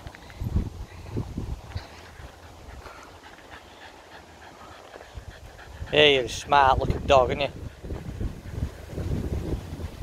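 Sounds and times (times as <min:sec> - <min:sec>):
dog panting: 0:01.9 - 0:09.0.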